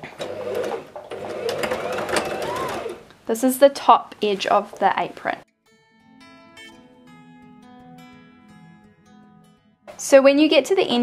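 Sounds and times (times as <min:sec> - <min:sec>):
sewing machine stitching: 0:00.1 - 0:03.1.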